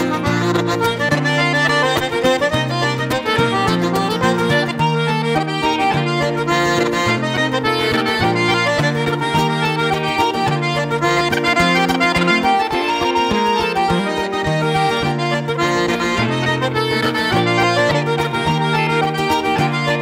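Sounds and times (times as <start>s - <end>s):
button accordion playing reels: 0.0s - 20.0s
guitar accompaniment: 0.0s - 20.0s.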